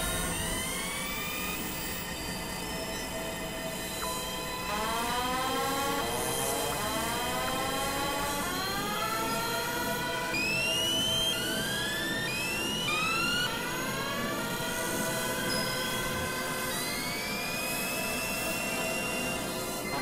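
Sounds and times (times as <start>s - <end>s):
gliding synthesizer tones: 0.0s - 1.6s.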